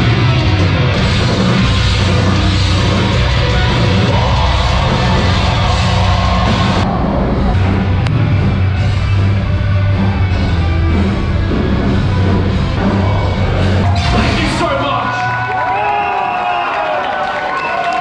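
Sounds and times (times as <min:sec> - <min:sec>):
heavy metal band playing live: 0:00.0 - 0:15.7.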